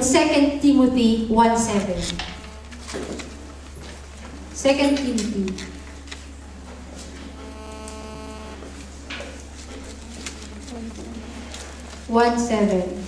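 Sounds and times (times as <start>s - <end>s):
low electrical hum: 0.0s - 13.0s
short buzzing tone: 1.9s - 3.6s, 5.2s - 11.7s.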